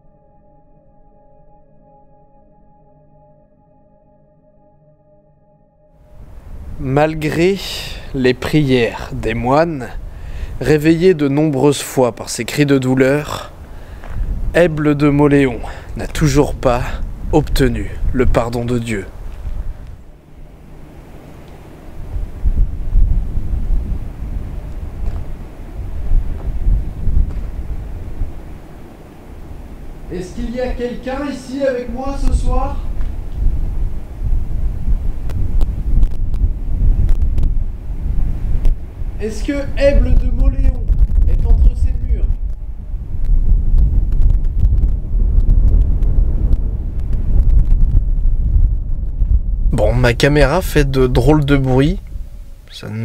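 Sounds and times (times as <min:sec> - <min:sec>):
wind buffeting microphone: 0:06.1 - 0:52.7.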